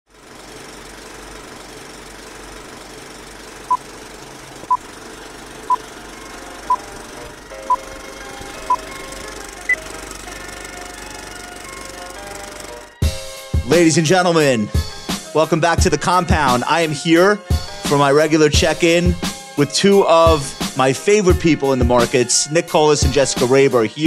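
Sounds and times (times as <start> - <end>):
film projector clatter: 0.1 - 13.9
countdown beeps: 6.7 - 6.9, 7.6 - 7.9, 8.6 - 8.9.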